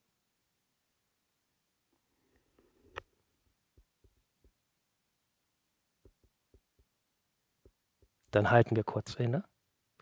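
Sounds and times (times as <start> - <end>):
soft low thumps: 6.0 - 7.0.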